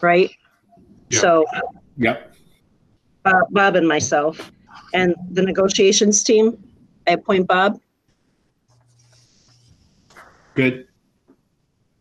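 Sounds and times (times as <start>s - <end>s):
faint low hum: 0.0s - 2.7s, 3.3s - 7.8s, 8.7s - 10.8s.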